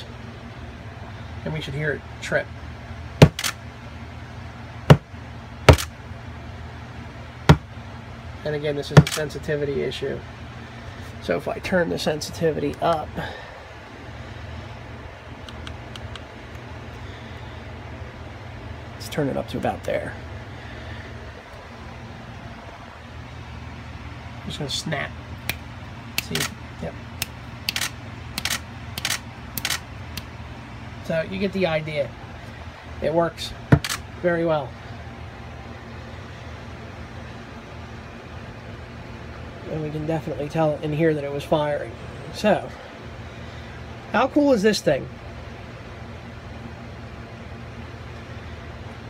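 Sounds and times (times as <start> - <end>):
low steady hum: 0.0 - 49.0
camera shutter firing: 3.2 - 3.6, 5.7 - 5.9, 9.0 - 9.3, 27.7 - 29.8, 33.8 - 34.0.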